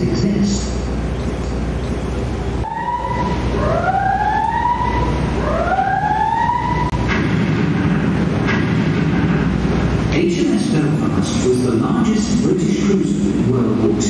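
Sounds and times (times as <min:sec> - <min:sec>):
boat engine rumbling: 0:00.0 - 0:14.0
siren wailing: 0:02.6 - 0:07.0.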